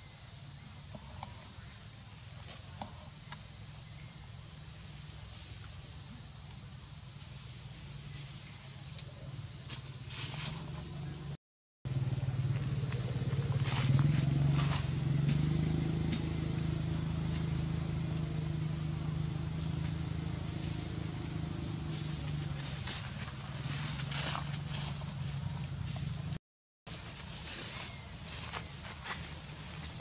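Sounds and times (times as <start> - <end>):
insect chorus drone: 0.0 - 30.0
low hum: 11.9 - 26.4.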